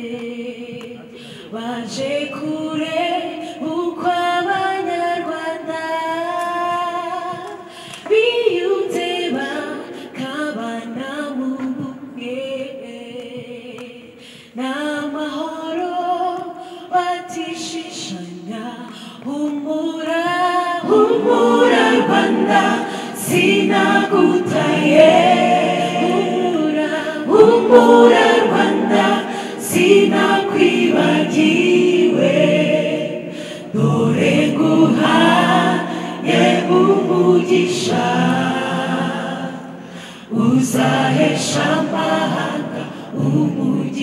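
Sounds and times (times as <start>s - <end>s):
choir singing a cappella: 0.0s - 44.0s.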